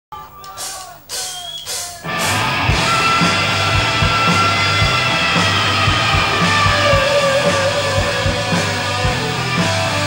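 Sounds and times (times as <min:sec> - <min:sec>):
bass guitar: 0:02.0 - 0:10.0
electric guitar chords: 0:02.1 - 0:10.0.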